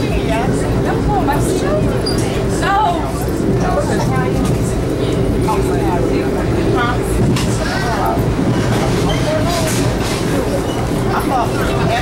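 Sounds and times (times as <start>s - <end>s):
passengers chattering: 0.0s - 12.0s
train wheels rumbling on rail: 0.0s - 12.0s.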